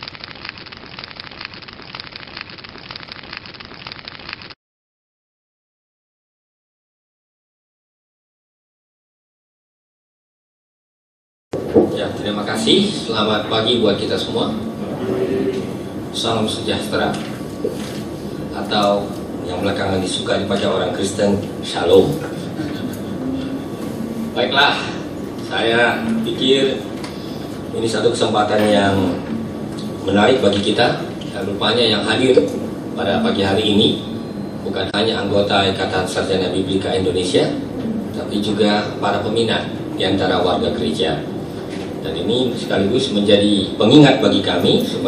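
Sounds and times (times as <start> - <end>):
dense crackling hiss: 0.0 - 4.5
hall noise: 11.6 - 45.0.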